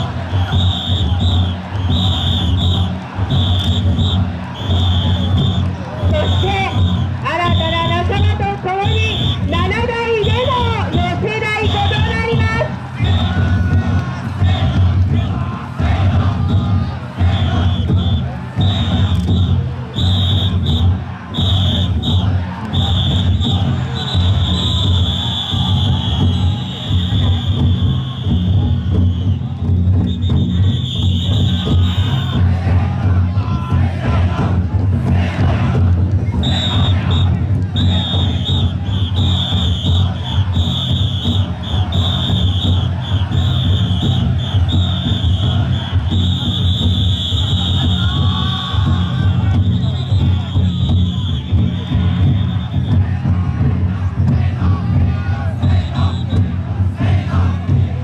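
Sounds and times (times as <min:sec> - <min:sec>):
large taiko drums beating: 0:00.0 - 0:58.0
voices of crowd: 0:00.0 - 0:58.0
shrill whistle-like tone: 0:00.2 - 0:07.7, 0:17.4 - 0:32.4, 0:36.4 - 0:48.6, 0:49.4 - 0:53.0, 0:55.8 - 0:56.4.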